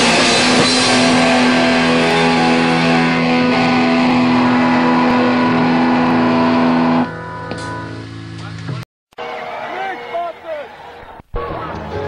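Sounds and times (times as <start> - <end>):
ringing guitar notes: 0.0 - 8.2
rock band final chord: 0.0 - 10.1.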